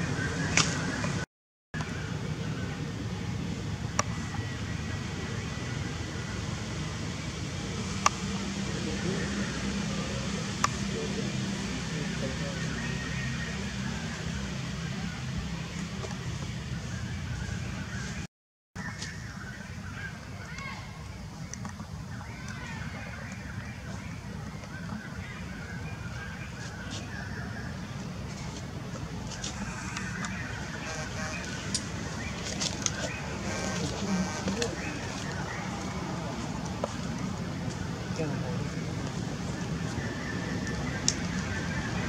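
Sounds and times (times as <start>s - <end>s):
crackly outdoor background noise: 0.0s - 42.0s.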